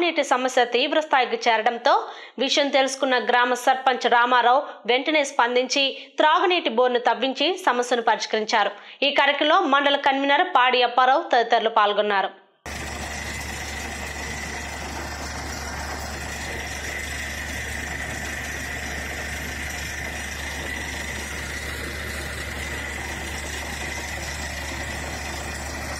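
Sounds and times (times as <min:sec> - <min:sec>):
faint high whine: 0:12.7 - 0:25.9
steady motor drone: 0:12.7 - 0:25.9.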